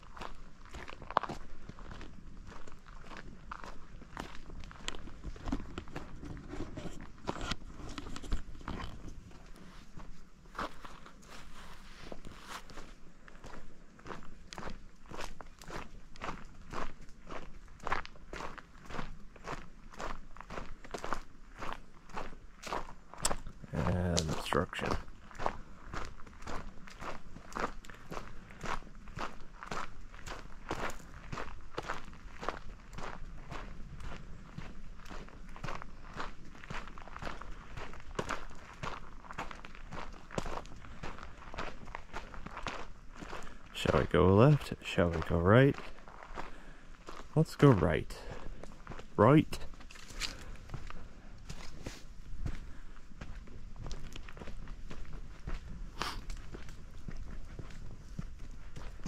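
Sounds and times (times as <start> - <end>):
footsteps on dirt trail: 0.0 - 59.0.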